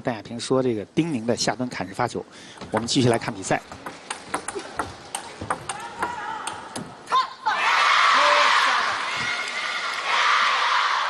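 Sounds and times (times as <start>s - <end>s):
table tennis ball hits: 2.6s - 7.0s.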